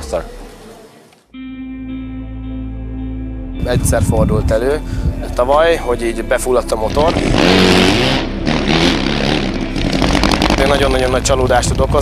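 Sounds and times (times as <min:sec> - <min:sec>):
motorcycle engine revving: 0:06.8 - 0:12.0.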